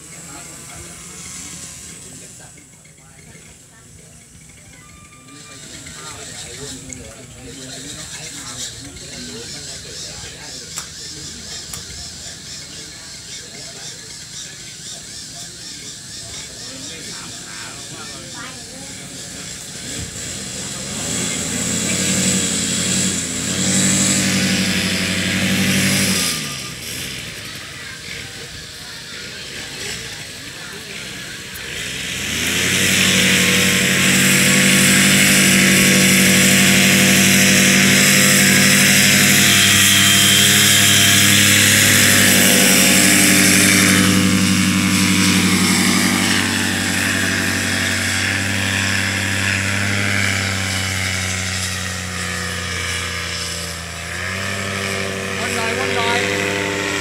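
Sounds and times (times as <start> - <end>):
paramotor engine and propeller: 0.0 - 57.0.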